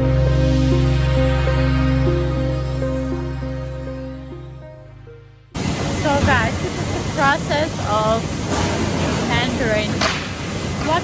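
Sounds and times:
soft background music: 0:00.0 - 0:08.2
voices: 0:06.0 - 0:08.4.

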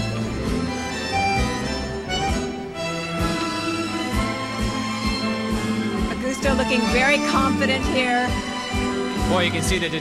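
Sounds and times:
instrumental ballroom dance music: 0:00.0 - 0:10.0.

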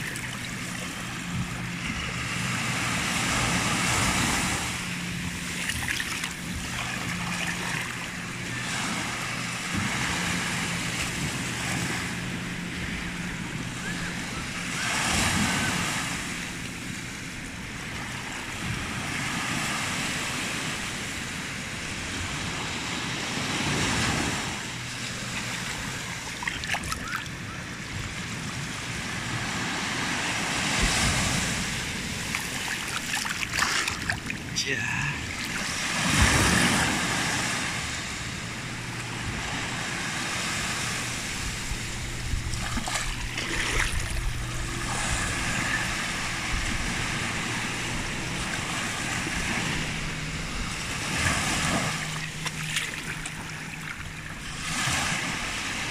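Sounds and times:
small waves washing over sand: 0:00.0 - 0:55.9.

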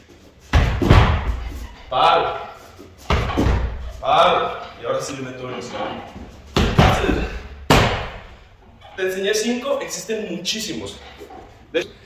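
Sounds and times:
kicks thudding on heavy punching bag: 0:00.5 - 0:01.6, 0:06.6 - 0:08.3.

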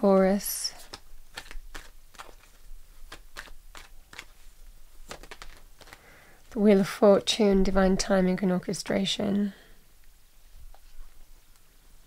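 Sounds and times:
cards being shuffled: 0:00.2 - 0:06.1.

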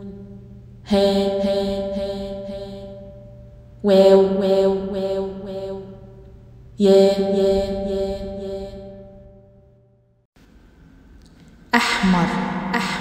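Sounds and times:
person chanting letter names: 0:00.0 - 0:03.2, 0:06.8 - 0:08.9, 0:11.8 - 0:13.0.

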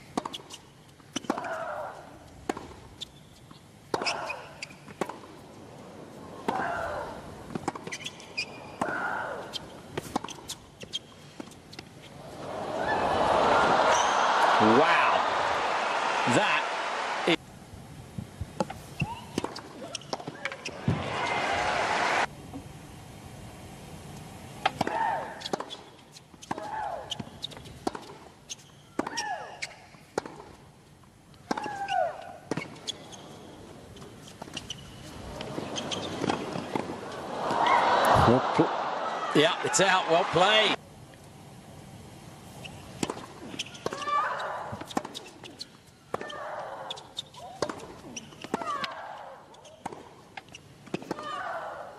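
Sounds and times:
crowd applause: 0:12.3 - 0:17.4, 0:21.0 - 0:22.3, 0:37.0 - 0:40.8
ball bouncing on hard court: 0:19.4 - 0:21.1.

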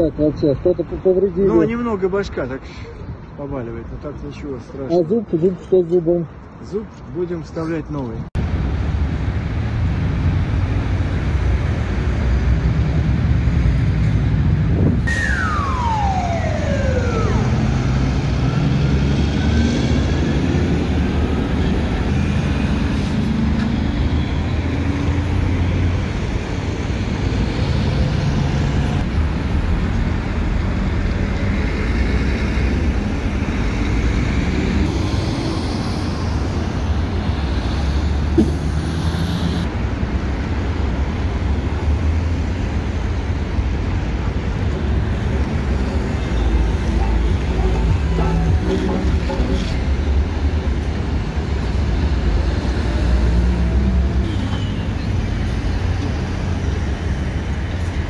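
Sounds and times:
heavy highway traffic: 0:00.0 - 0:58.0
descending high tone: 0:14.9 - 0:20.1, 0:46.2 - 0:49.8.

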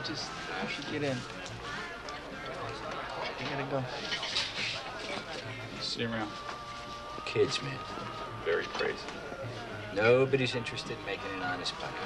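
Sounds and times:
men talking: 0:00.0 - 0:06.6, 0:07.2 - 0:12.0
background music: 0:00.0 - 0:12.0.

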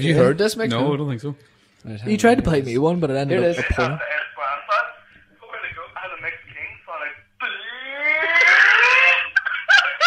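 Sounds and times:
man laughing demented wail: 0:07.9 - 0:10.0.

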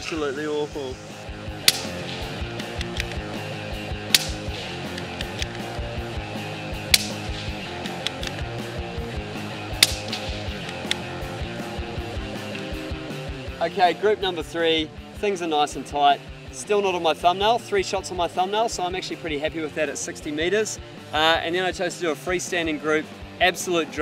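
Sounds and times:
background music: 0:00.0 - 0:24.0
suppressed rifle shots: 0:01.6 - 0:03.2, 0:04.0 - 0:05.5, 0:06.8 - 0:08.4, 0:09.7 - 0:11.1.

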